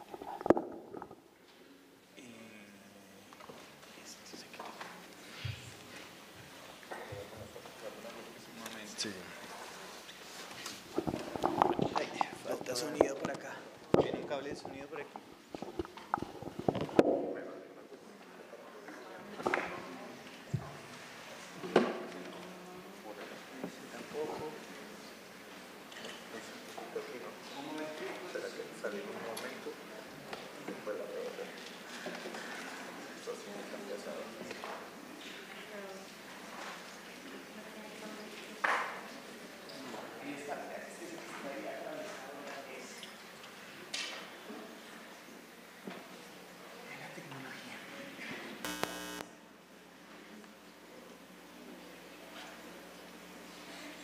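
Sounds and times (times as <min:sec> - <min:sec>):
faint steady hum: 0:00.0 - 0:25.9, 0:47.9 - 0:54.0
loud electrical buzz: 0:48.6 - 0:49.4.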